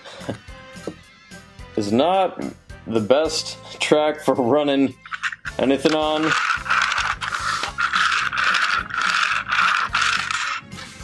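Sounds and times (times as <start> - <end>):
toy train wheels rattling on track: 5.0 - 10.6.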